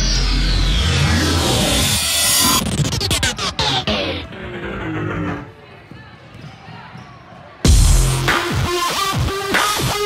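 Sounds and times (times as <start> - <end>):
music: 0.0 - 5.6, 7.6 - 10.0
sneakers squeaking on floor: 5.8 - 7.6.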